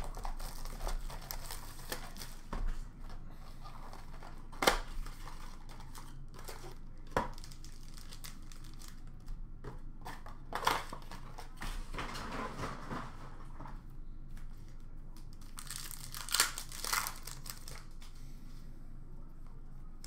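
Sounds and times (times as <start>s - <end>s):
cardboard and foil crinkling: 0.0s - 2.8s, 3.5s - 9.3s, 15.2s - 18.1s.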